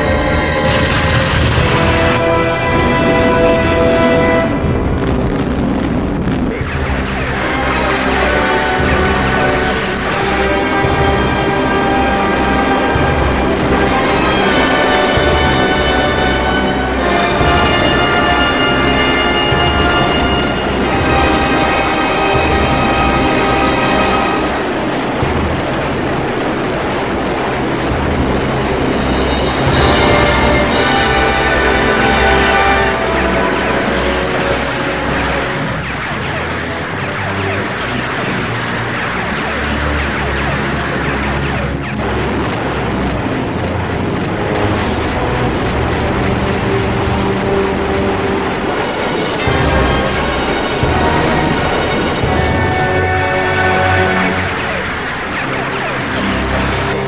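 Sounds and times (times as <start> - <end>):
background music: 0.0 - 57.0
dense rushing noise: 0.0 - 57.0.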